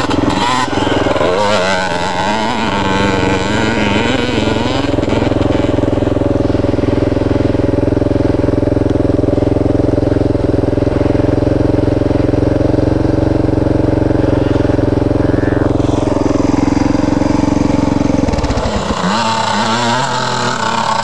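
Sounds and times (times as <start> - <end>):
dirt bike engine idling: 0.0 - 21.0.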